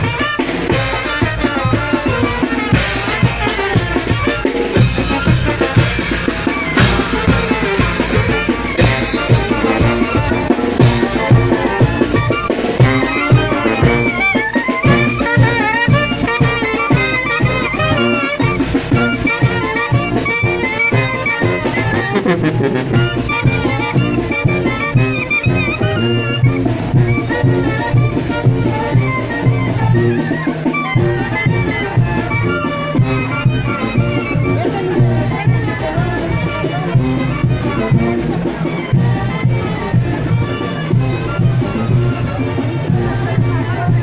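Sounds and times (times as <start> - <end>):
clarinets and brass melody: 0.0 - 44.0
lively traditional band music: 0.0 - 44.0
steady drum beat: 0.0 - 44.0.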